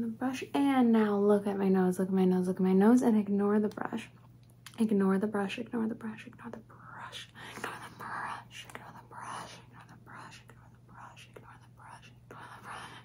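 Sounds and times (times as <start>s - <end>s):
faint steady hum: 0.0s - 13.0s
woman whispering: 5.8s - 13.0s.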